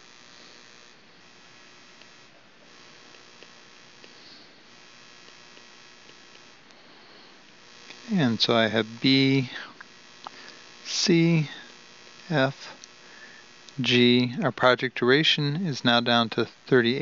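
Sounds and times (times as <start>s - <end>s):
faint ticks: 0.0s - 8.2s, 8.9s - 13.8s
electrical hum with hiss: 0.0s - 17.0s.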